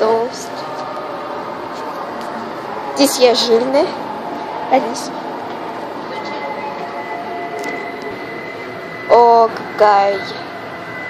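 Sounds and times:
steady hum: 0.0s - 11.0s
faint high steady tone: 2.9s - 11.0s.

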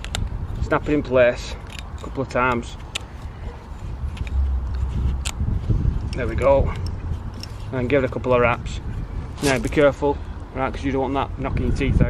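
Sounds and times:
small clicks and rubbing: 0.0s - 10.5s.

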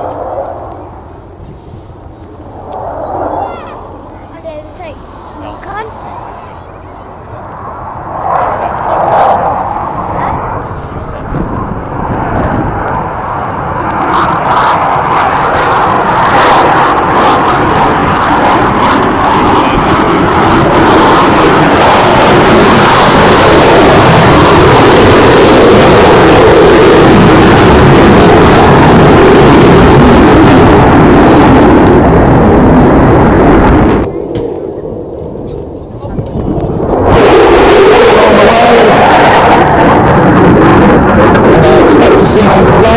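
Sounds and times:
fighter jet passing low: 0.0s - 42.9s.

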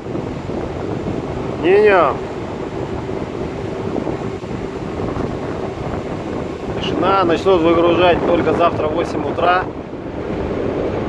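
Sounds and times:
ship engine rumbling: 0.0s - 11.0s
wind buffeting microphone: 0.0s - 11.0s.

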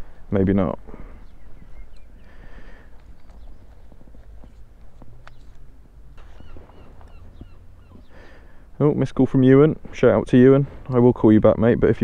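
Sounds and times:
footsteps on concrete: 2.9s - 8.1s.

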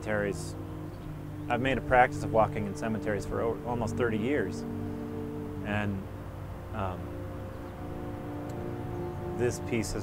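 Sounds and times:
orchestral sustained chord: 0.0s - 10.0s.

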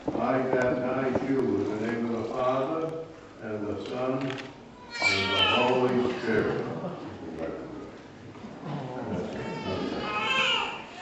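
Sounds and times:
infant crying: 4.8s - 6.6s, 9.4s - 11.0s.

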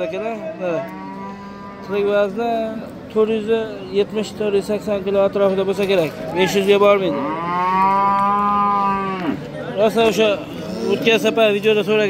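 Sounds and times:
cattle mooing: 0.2s - 2.2s, 7.1s - 9.4s, 10.5s - 11.3s.

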